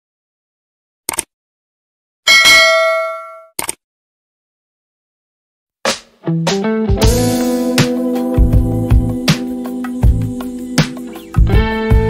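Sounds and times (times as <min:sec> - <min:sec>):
notification bell ding: 0:02.3 - 0:03.5.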